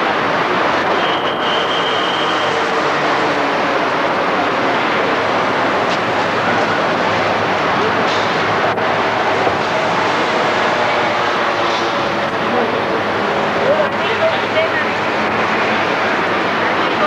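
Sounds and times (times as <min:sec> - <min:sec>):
rushing roar of traffic: 0:00.0 - 0:17.0.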